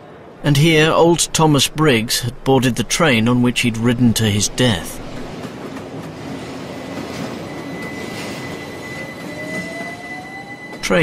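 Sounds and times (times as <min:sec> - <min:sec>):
train rumble and hiss: 0:00.0 - 0:11.0.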